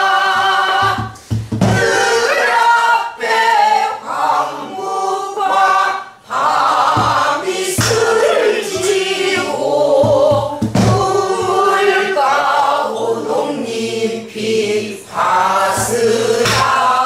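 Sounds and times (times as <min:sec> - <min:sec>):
group singing folk song: 0:00.0 - 0:17.0.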